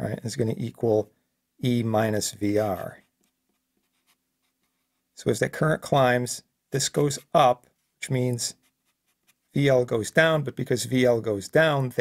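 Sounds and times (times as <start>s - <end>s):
felt-tip marker writing on paper: 3.0s - 5.0s, 8.6s - 9.5s.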